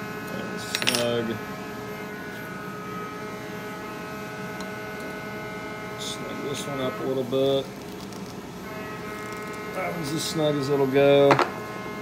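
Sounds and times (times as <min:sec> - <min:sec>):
machine humming: 0:00.0 - 0:12.0.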